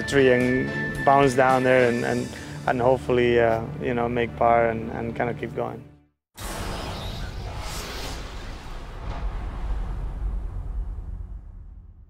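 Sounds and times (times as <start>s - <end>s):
whoosh with deep rumble: 6.4s - 12.0s.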